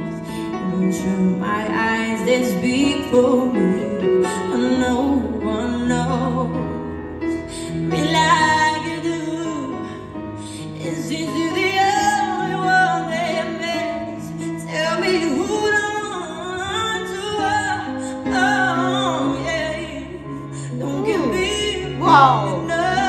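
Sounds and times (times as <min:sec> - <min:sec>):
woman singing: 0:00.0 - 0:06.8, 0:10.6 - 0:23.0.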